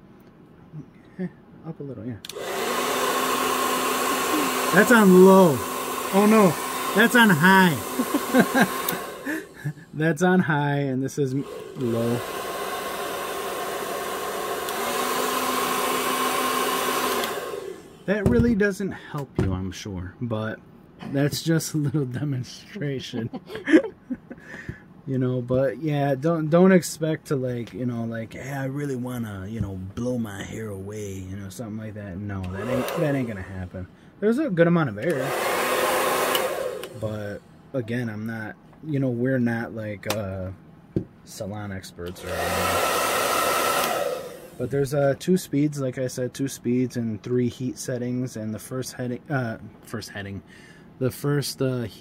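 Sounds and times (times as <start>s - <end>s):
hair dryer running: 2.3s - 9.9s, 11.2s - 18.4s, 32.4s - 33.6s, 35.0s - 37.4s, 42.1s - 45.0s.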